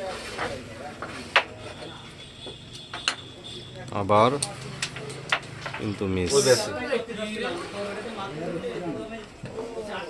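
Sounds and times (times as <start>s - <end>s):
carrom striker clicking wooden pieces: 4.4s - 5.9s.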